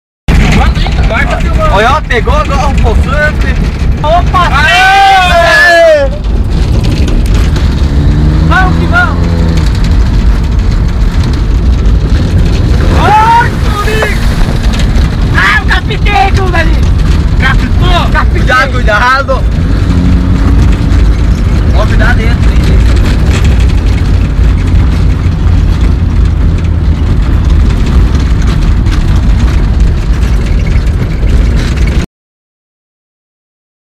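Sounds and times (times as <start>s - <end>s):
road noise: 0.3s - 32.1s
rally car engine rumbling past: 6.2s - 15.4s, 19.3s - 32.0s.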